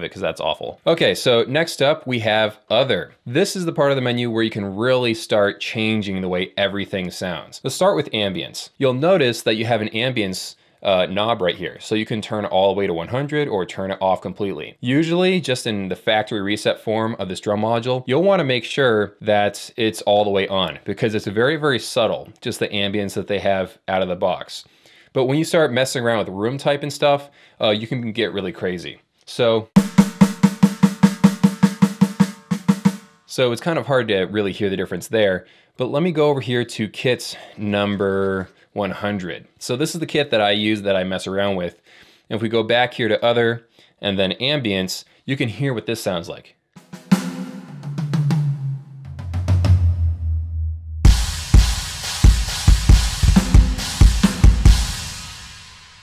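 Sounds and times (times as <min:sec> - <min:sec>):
electronic snare hits: 0:29.8 - 0:33.2, 0:51.1 - 0:56.0
cymbal crash: 0:46.8 - 0:56.0
kick drum hits: 0:51.1 - 0:54.9.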